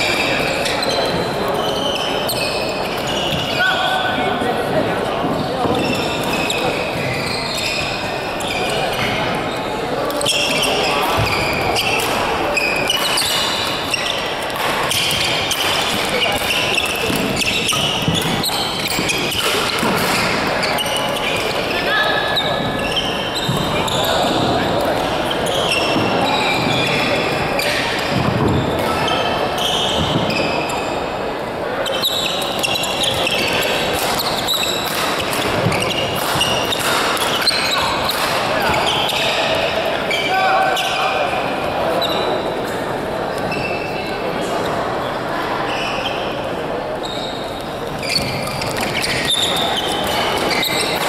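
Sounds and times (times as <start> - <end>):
sneakers squeaking on court: 0.0 - 3.6, 5.2 - 31.0, 31.8 - 41.0, 47.0 - 51.0.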